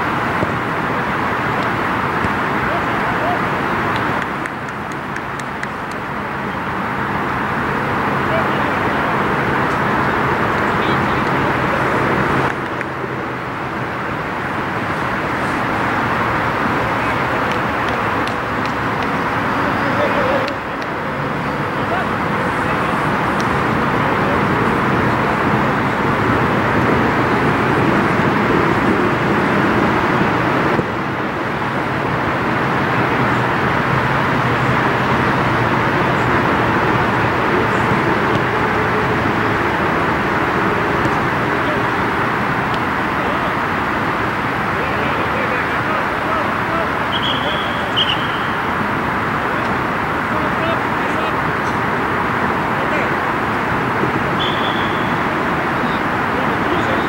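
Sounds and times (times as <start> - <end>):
steady outdoor noise: 0.0 - 57.0
players' voices: 0.2 - 29.0, 30.8 - 57.0.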